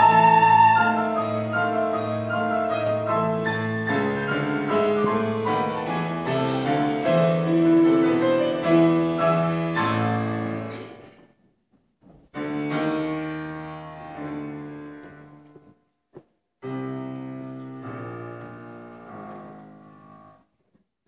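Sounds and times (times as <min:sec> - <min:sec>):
slow classical piano: 0:00.0 - 0:21.0.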